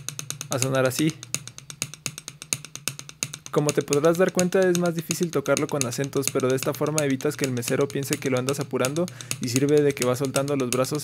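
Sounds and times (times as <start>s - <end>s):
sticks tapping a tabletop: 0.0s - 11.0s.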